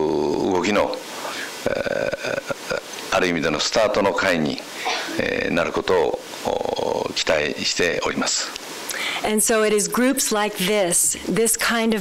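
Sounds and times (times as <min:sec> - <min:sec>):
man speaking into microphone: 0:01.7 - 0:08.6.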